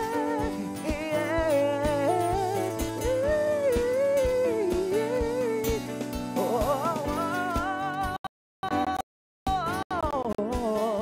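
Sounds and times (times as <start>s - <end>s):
drum beats: 0.0s - 11.0s
live band: 0.0s - 11.0s.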